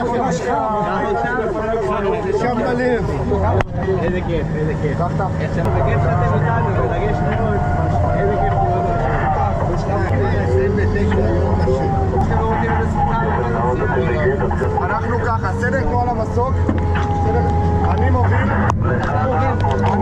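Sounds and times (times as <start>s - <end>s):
low engine drone: 0.0s - 20.0s
voices talking: 0.0s - 20.0s.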